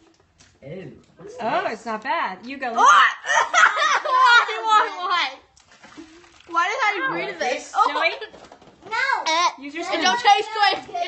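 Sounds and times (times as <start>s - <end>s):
children talking and exclaiming: 2.8s - 11.0s.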